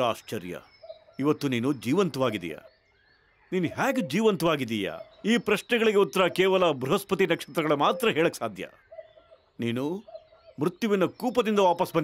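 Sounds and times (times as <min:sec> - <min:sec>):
faint held tone: 0:03.8 - 0:04.4.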